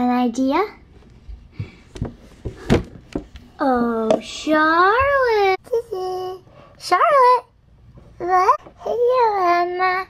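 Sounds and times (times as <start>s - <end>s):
plastic toy knocks and thumps: 1.6s - 3.4s.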